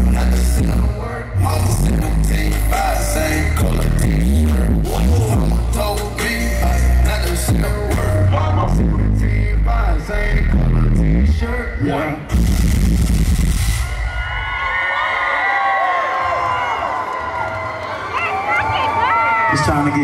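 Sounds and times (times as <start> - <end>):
hip-hop music with heavy bass: 0.0 - 14.5
crowd cheering and whooping: 13.6 - 20.0.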